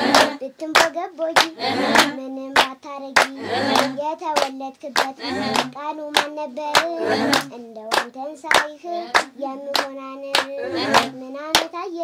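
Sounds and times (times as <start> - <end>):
group hand-clapping: 0.0 - 11.8
girl singing: 0.0 - 12.0.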